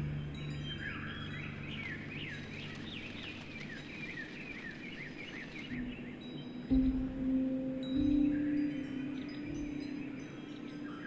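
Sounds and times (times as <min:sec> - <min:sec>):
songbird chirping: 0:00.0 - 0:11.0.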